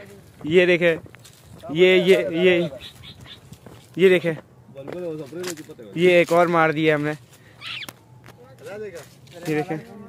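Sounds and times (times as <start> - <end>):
man calling out loudly: 1.6 - 3.0.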